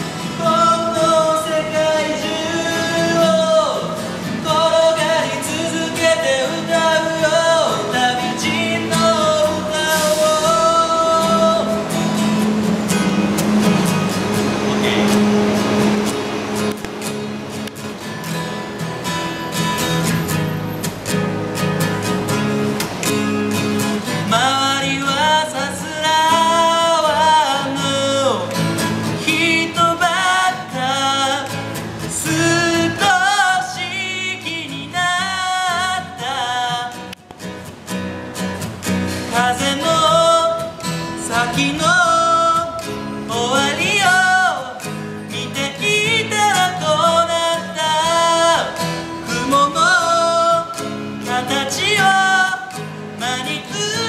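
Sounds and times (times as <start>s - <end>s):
man singing: 0.0s - 12.5s, 14.6s - 15.5s, 24.2s - 37.1s, 39.2s - 54.0s
strummed acoustic guitar: 0.0s - 54.0s.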